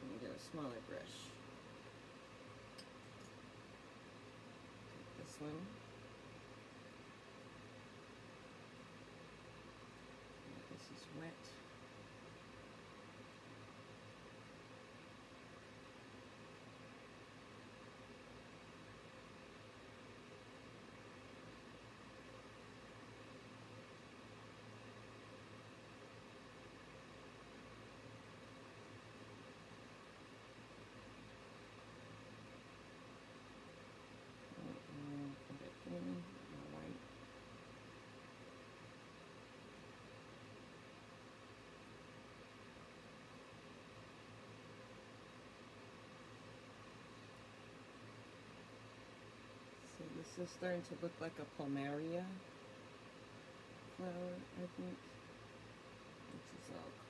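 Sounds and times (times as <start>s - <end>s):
faint constant hum: 0.0s - 57.0s.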